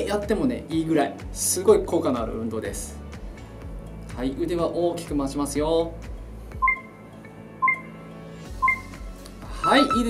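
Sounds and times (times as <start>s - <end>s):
faint background music: 0.0s - 10.0s
short electronic beeps: 6.6s - 7.0s, 7.6s - 9.0s, 9.6s - 10.0s.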